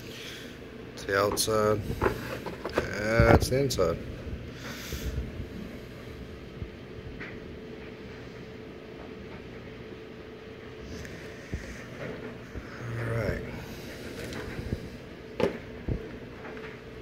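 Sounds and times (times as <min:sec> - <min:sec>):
faint hum: 0:00.0 - 0:17.0
low background rumble: 0:00.0 - 0:17.0.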